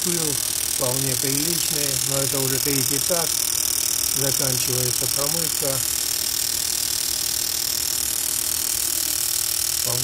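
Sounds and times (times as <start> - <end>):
fuel injectors hissing and buzzing: 0.0 - 10.0.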